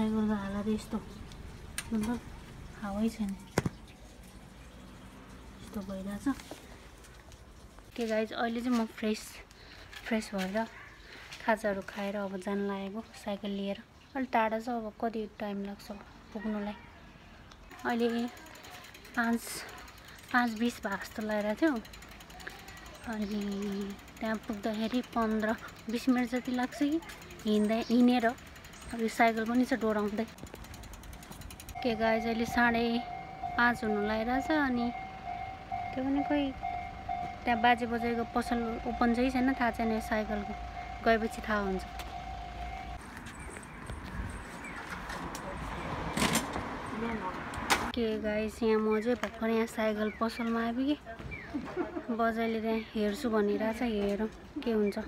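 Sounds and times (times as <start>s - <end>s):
street noise: 0.0s - 55.0s
bicycle being wheeled: 17.6s - 46.5s.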